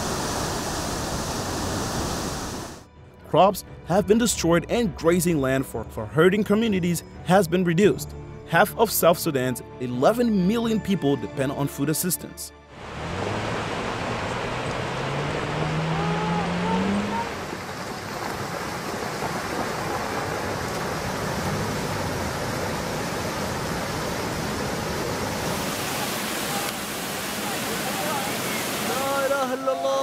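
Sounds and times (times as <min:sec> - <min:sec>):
floodwater rushing: 0:00.0 - 0:02.9, 0:12.8 - 0:30.0
person calling out: 0:15.9 - 0:17.4.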